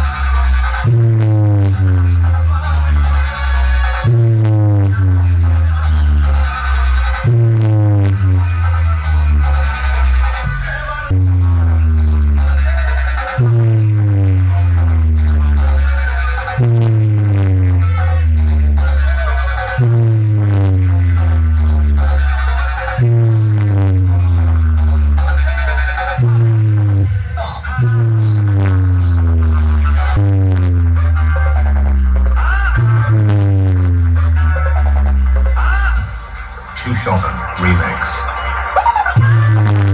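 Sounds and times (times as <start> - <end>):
hard-bass electronic music: 0.0 - 39.9.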